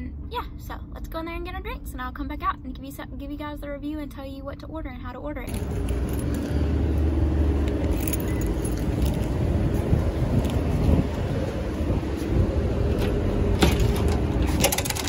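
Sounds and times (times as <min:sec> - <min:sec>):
steady low rumble: 0:00.0 - 0:15.0
keys jangling: 0:05.5 - 0:06.6, 0:07.6 - 0:09.4.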